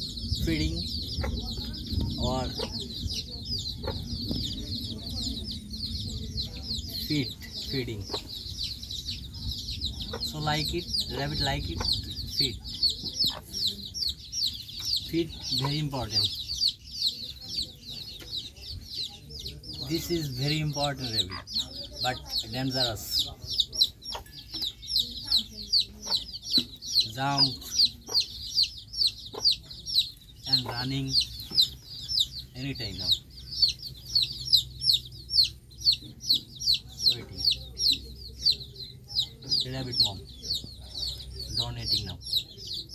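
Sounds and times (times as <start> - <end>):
chicks peeping: 0.0 - 42.9.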